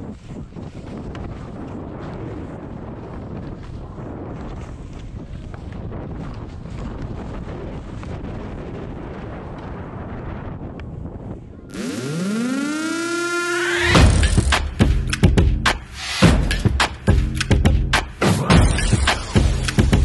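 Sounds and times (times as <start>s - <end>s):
wind rushing over microphone: 0.0s - 13.1s
rising siren-like synth sweep: 11.7s - 14.4s
music: 13.9s - 20.0s.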